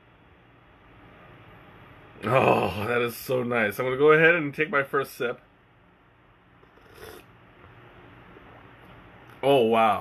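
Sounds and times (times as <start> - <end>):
person slurping tea: 6.6 - 7.3.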